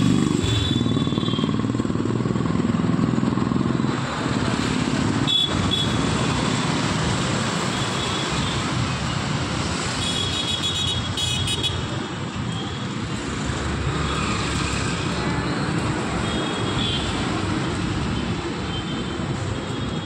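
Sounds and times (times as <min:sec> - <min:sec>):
road traffic passing: 0:00.0 - 0:20.0.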